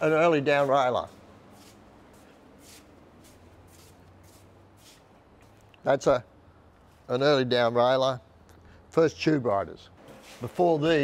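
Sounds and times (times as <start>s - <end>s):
shuffling footsteps: 0.0s - 5.7s.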